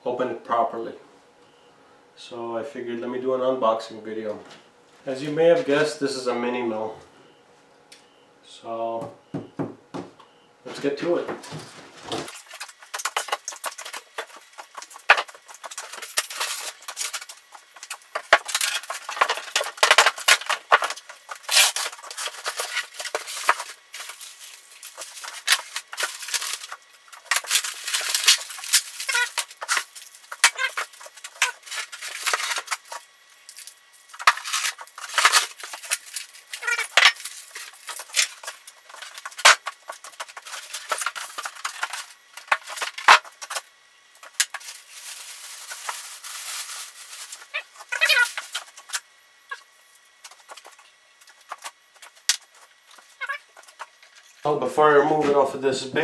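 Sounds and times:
styrofoam and plastic wrap crackling: 10.7s - 54.6s.

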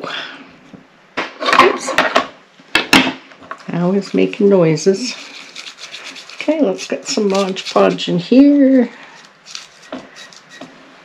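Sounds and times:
paper rubbing and rustling: 4.0s - 8.1s, 8.7s - 10.7s.

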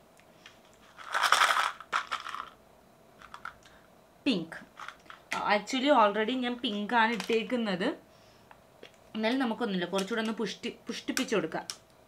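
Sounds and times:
pack rustling: 0.8s - 2.5s
candy rattling in pack: 0.9s - 2.6s.

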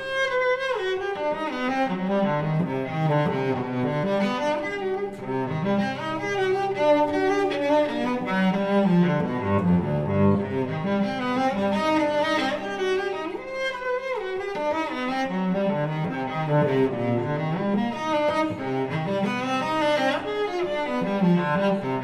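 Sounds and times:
solo cello arpeggios: 0.0s - 22.0s.

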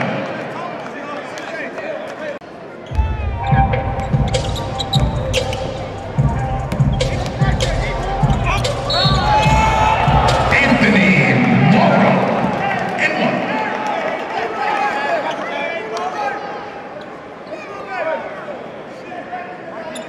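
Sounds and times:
crowd shouting and cheering: 0.0s - 19.8s
sneakers squeaking: 2.8s - 10.7s.

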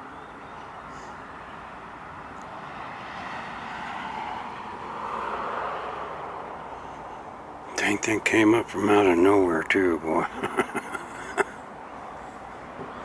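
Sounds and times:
vehicle driving past: 2.5s - 7.3s.

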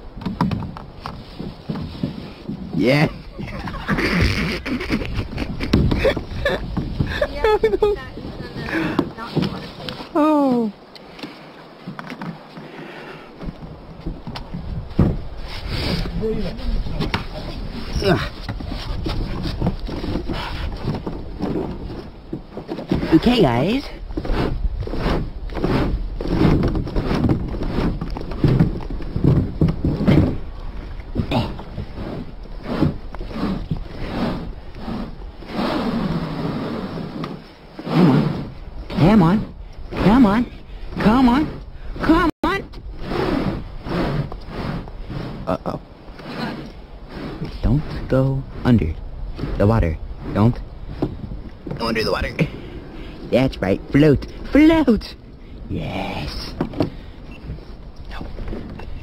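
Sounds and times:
kayak knocking against dock: 0.1s - 10.0s, 11.8s - 34.7s, 50.2s - 52.6s, 56.5s - 59.0s.

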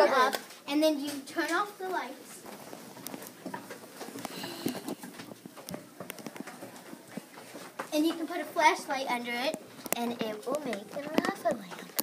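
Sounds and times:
faint voices murmuring: 2.3s - 8.8s.

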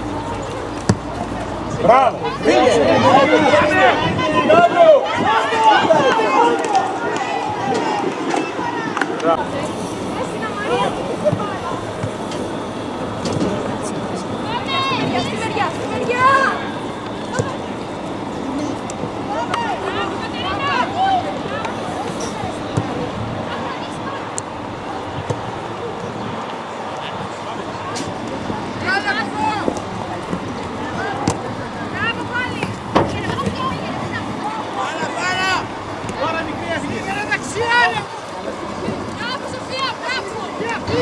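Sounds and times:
open-air background noise: 0.0s - 41.0s
steady outdoor noise: 0.0s - 41.0s.

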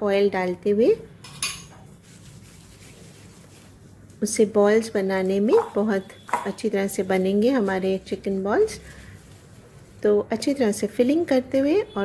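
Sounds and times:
metal spoon clinking on ceramic bowl: 1.2s - 1.8s
gloved hands rubbing: 1.9s - 4.2s.

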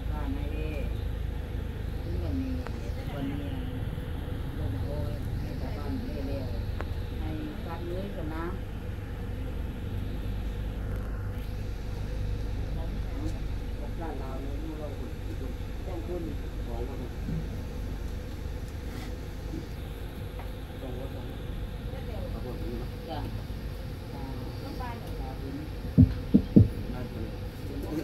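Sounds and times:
faint hum: 0.0s - 28.0s
low rumble: 25.5s - 27.4s.

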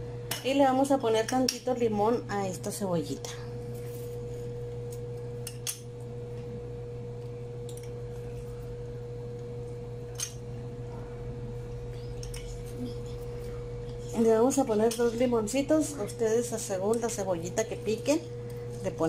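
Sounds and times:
steady humming tone: 0.0s - 19.0s
low hum: 2.1s - 19.0s.

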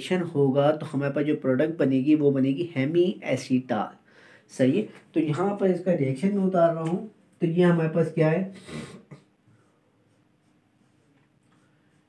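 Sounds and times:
marker writing on whiteboard: 9.5s - 12.0s.

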